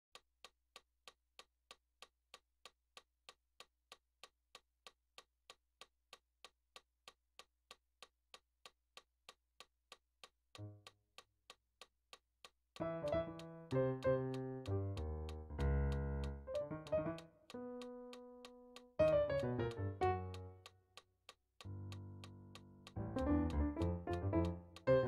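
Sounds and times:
metronome clicking: 12.8 - 20.8, 21.6 - 25.0.

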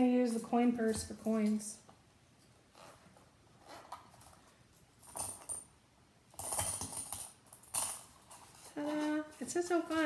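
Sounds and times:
coins clinking in a pouch: 6.3 - 10.0.

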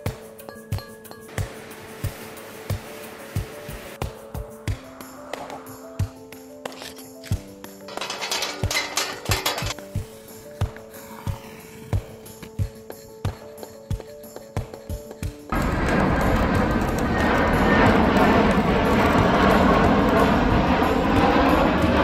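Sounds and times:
music with steady beat: 0.0 - 6.6, 12.0 - 22.0
bright rattling clinking: 7.8 - 9.9.

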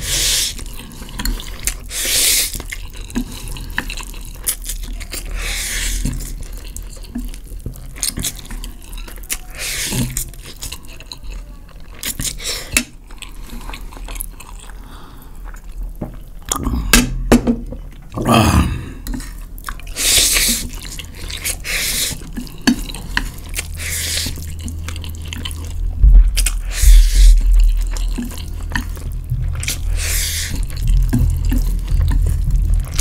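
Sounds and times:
wet noodle slurping: 0.0 - 7.3, 18.9 - 25.8, 26.4 - 33.0.

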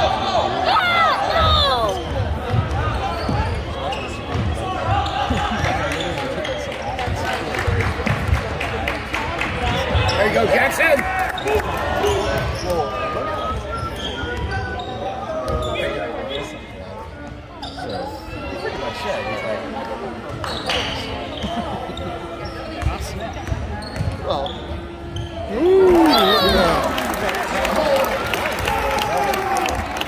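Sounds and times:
spectators talking: 0.0 - 30.0.

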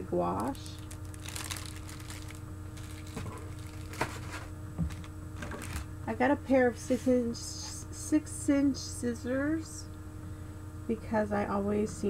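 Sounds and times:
plastic shrink-wrap crinkling: 0.3 - 5.9.

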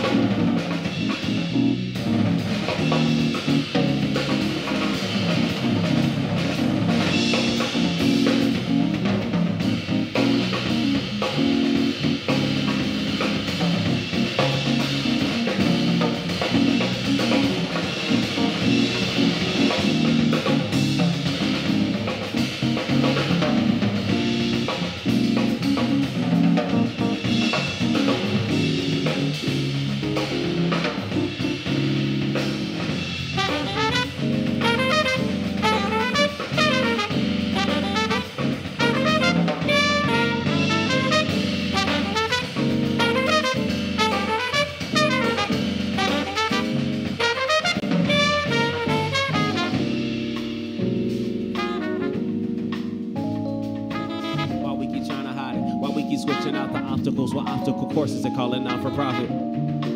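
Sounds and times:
trumpet: 0.0 - 25.9, 32.9 - 50.8, 51.5 - 59.9
alto saxophone: 0.0 - 32.0, 32.9 - 59.9
bass guitar: 0.0 - 59.9
drums: 0.0 - 59.9
piano: 0.0 - 59.9.

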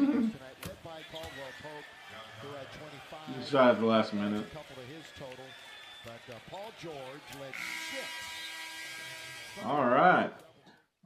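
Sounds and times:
commentator talking: 0.0 - 5.4.

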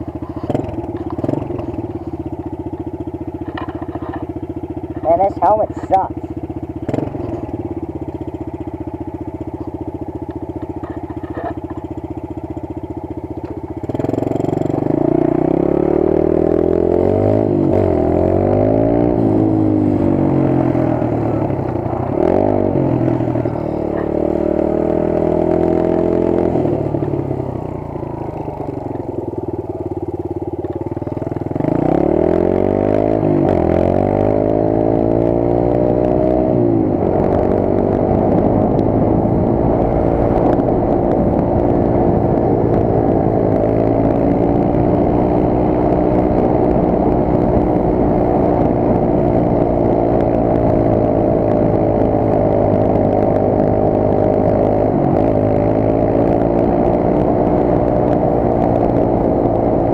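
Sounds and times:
dirt bike engine revving: 0.3 - 2.1, 6.8 - 7.8, 13.8 - 26.9, 31.0 - 59.9.

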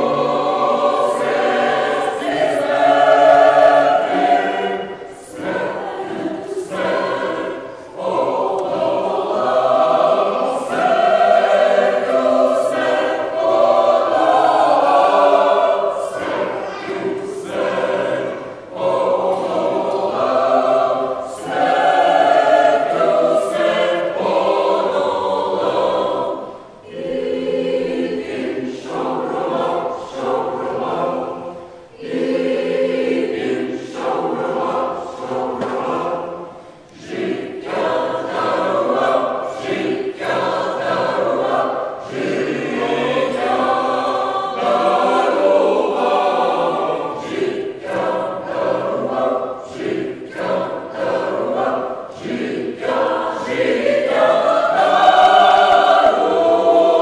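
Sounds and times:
choir singing in parts: 0.0 - 57.0.

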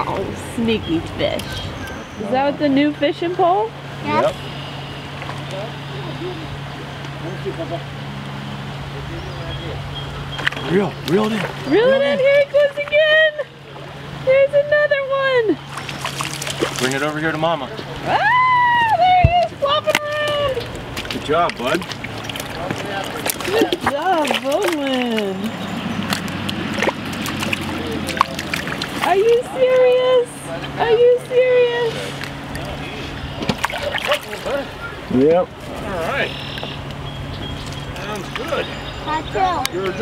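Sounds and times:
stream water flowing: 0.0 - 40.0
water splashing and dripping: 10.3 - 13.2, 15.6 - 17.4, 18.8 - 30.1, 32.1 - 34.7.

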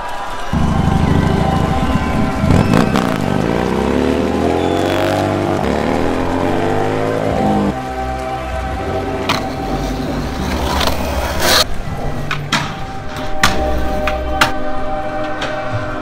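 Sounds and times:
motorcycle engine revving: 0.6 - 7.8, 9.0 - 11.7
background music with held notes: 0.6 - 16.0.

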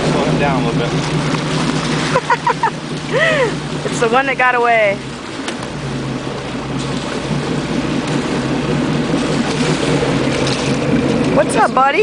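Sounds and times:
boat engine idling: 0.0 - 12.0
water noise: 0.0 - 12.0
wind: 0.0 - 12.0.

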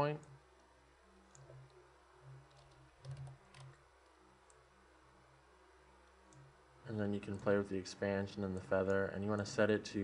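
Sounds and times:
computer mouse clicks: 1.3 - 4.6, 6.0 - 6.5
keyboard key presses: 2.5 - 3.8.

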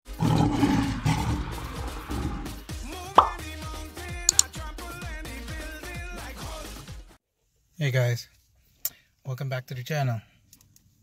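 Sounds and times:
lion roar: 0.1 - 2.6
intro music: 0.2 - 4.8
sharp pop: 3.2 - 3.4.

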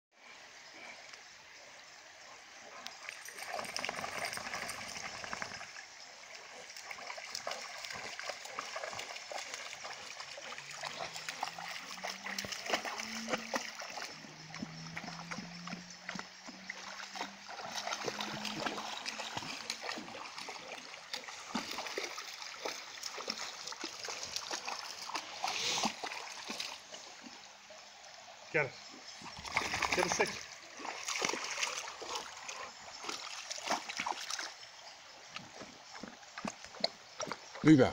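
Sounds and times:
shallow river running: 0.2 - 37.9
dogs splashing in water: 3.0 - 5.8, 6.5 - 27.4, 29.2 - 34.6.

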